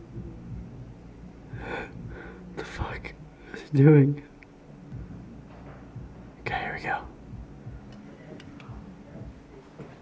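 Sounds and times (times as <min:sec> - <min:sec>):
person whispering: 0:02.5 - 0:03.8, 0:06.4 - 0:07.2.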